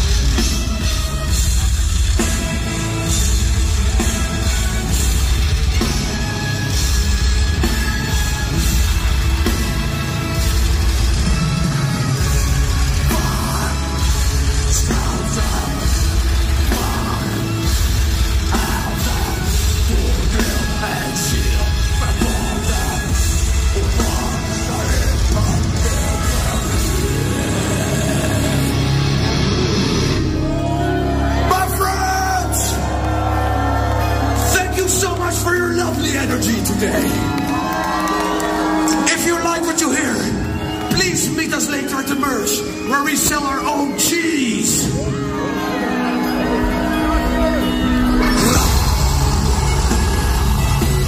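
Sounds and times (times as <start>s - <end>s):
metal band playing live: 0.0s - 51.0s.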